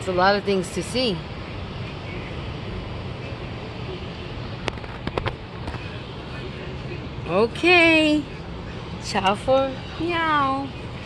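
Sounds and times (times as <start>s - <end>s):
steady background hum: 0.0s - 11.0s.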